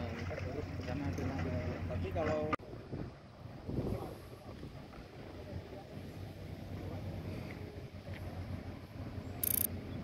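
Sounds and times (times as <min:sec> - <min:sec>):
high-pitched electronic tone: 0:09.4 - 0:09.7.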